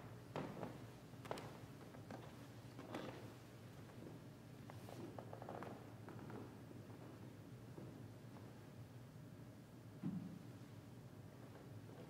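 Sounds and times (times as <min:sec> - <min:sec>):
faint soft clicks and rustles: 0:00.3 - 0:08.6.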